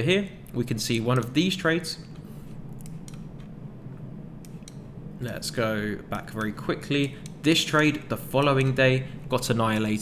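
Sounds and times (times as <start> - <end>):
steady low hum: 0.0 - 10.0
computer mouse clicks: 2.7 - 3.5, 4.4 - 4.8.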